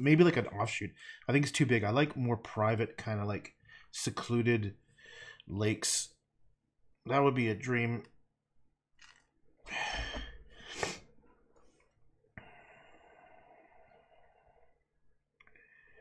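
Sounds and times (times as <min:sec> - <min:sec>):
man sighing: 0:09.7 - 0:11.0.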